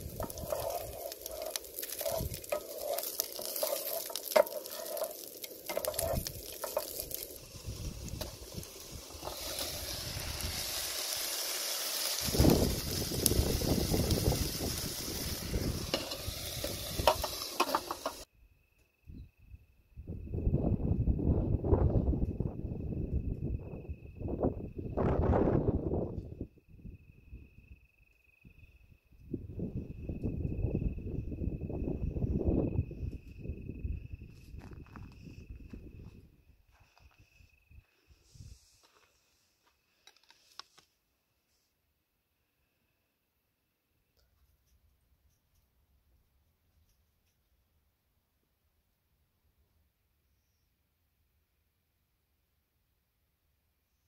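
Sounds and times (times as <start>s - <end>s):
wooden spoon scraping a pan: 0.0s - 10.0s, 15.2s - 18.3s
food sizzling in a pan: 0.0s - 18.3s.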